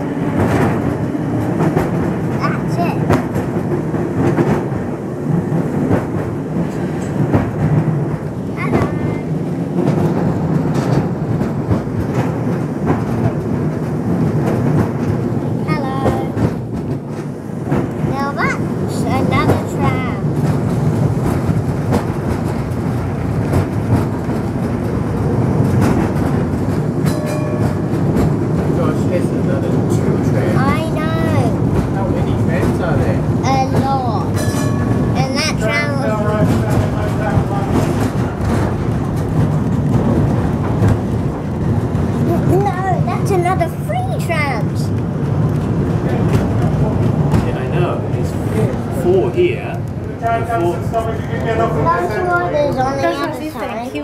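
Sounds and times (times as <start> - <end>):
tram rumbling and rattling: 0.0 - 54.0
wheels clicking over rail joints: 0.2 - 54.0.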